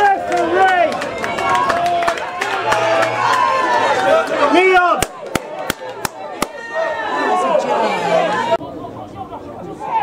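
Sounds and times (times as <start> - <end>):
spectators chatting: 0.0 - 10.0
sharp claps: 5.0 - 6.6.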